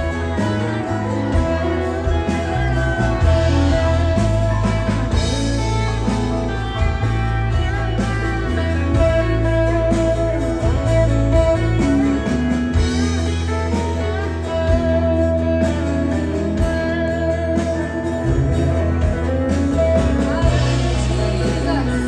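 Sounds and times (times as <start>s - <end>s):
acoustic guitars: 0.0s - 22.0s
bass line: 0.0s - 22.0s
held chords: 0.0s - 22.0s.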